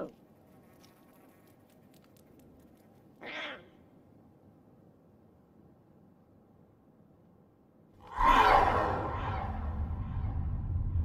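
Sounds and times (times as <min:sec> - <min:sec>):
lion cub mewing: 0:03.2 - 0:03.8.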